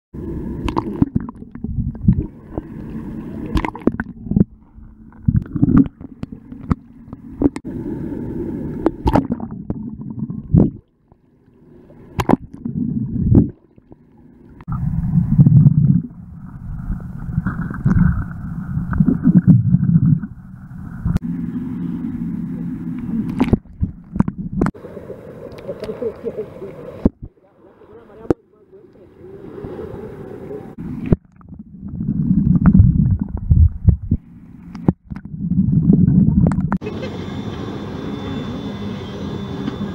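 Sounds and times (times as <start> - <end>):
water sloshing and gurgling: 0.2 - 36.8
sharp water splashes: 0.6 - 4.2, 8.8 - 10.9.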